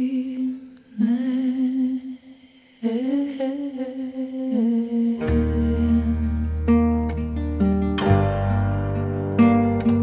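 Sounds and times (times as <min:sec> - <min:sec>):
woman humming a melody: 0:02.9 - 0:06.6.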